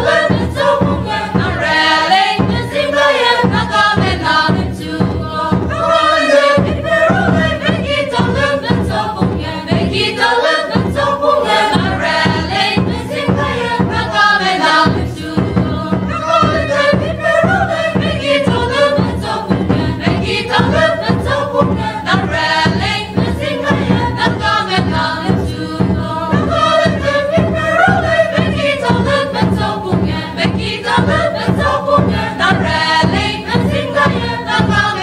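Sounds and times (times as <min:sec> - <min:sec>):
mixed choir singing: 0:00.0 - 0:35.0
regular beat: 0:00.0 - 0:35.0.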